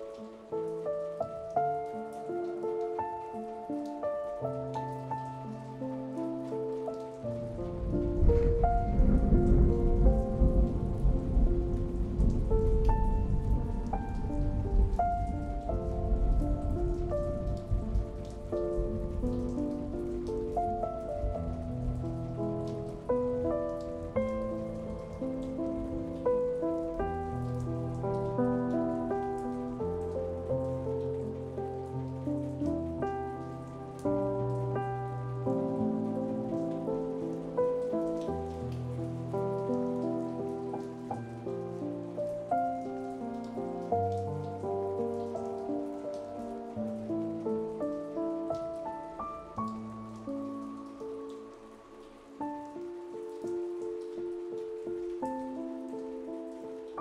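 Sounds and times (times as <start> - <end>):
gentle solo piano music: 0.0 - 57.0
rain pattering: 0.0 - 57.0
distant thunder rumble: 7.5 - 29.8.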